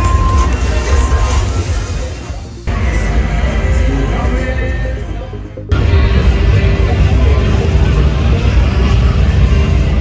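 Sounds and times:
bass-heavy music from bars: 0:00.0 - 0:10.0
crowd chatter: 0:00.0 - 0:10.0.

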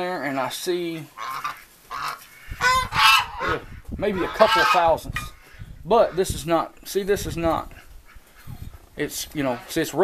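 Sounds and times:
geese honking: 0:00.6 - 0:06.5.

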